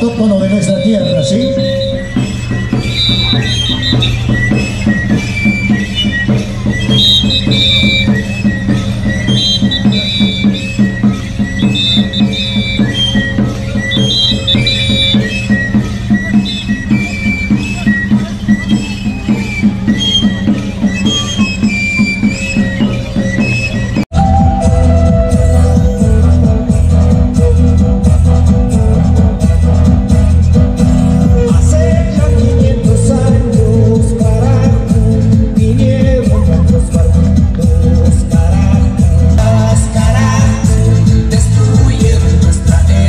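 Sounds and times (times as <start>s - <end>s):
high flute melody: 0.0s - 36.9s
steady drum beat: 0.0s - 43.0s.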